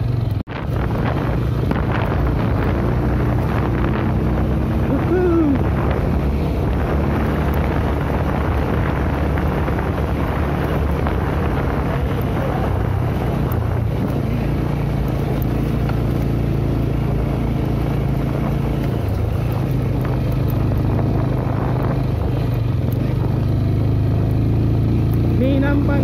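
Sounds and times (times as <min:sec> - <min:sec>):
motorcycle engine running: 0:00.0 - 0:26.0
wind buffeting microphone: 0:00.4 - 0:26.0.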